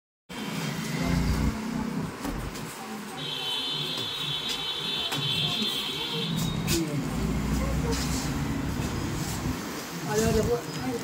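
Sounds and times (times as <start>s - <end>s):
indistinct voices: 5.1s - 11.0s.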